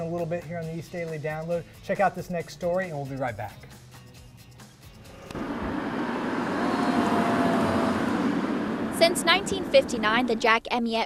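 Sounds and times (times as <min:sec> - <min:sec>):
traffic and road noise: 0:05.1 - 0:10.8.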